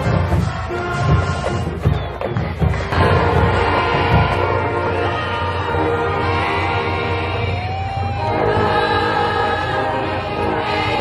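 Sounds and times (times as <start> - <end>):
choir singing sustained notes: 0.0 - 1.9, 2.9 - 11.0.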